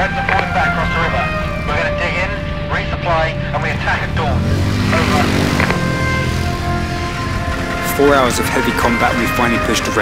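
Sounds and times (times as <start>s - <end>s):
men calling out: 0.0s - 6.5s
steady low rumble: 0.0s - 8.4s
background music: 0.0s - 10.0s.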